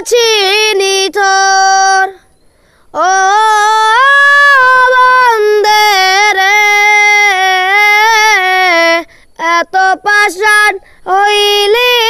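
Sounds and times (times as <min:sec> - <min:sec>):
young boy singing unaccompanied: 0:00.0 - 0:12.0.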